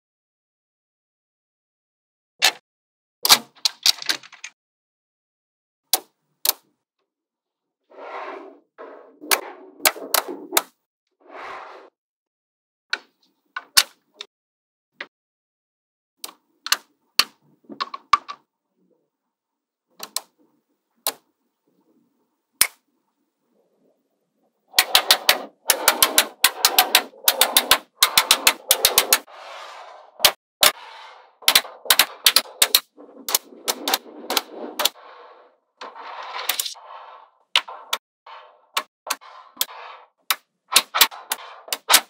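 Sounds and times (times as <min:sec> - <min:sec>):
magnetic balls rasping on a table: 0:07.9 - 0:10.8, 0:24.7 - 0:42.0
magnetic pieces snapping together: 0:31.4 - 0:34.9.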